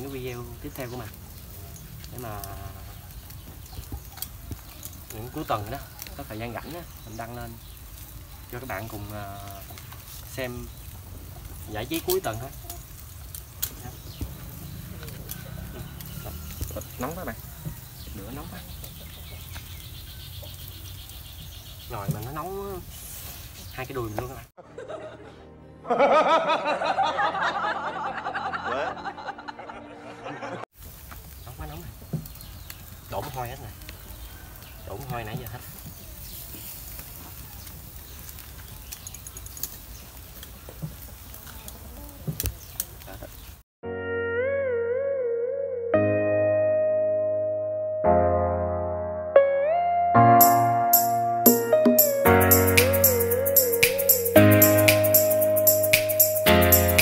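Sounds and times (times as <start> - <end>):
electronic keyboard music: 43.8 - 57.0.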